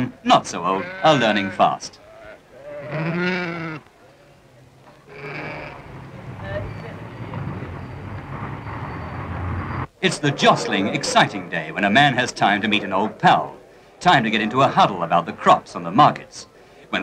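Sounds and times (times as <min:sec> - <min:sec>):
sheep bleating: 0:00.6 - 0:03.9, 0:05.1 - 0:05.9
murmur of men talking: 0:10.0 - 0:17.0.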